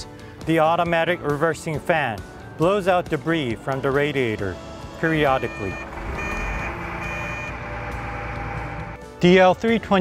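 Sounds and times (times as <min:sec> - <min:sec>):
reversing alarm beeping: 0:05.3 - 0:09.0
wheel loader engine rumble: 0:05.4 - 0:09.0.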